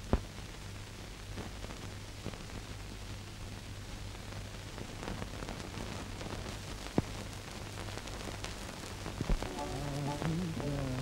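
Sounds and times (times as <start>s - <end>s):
film soundtrack hiss and crackle: 0.0s - 11.0s.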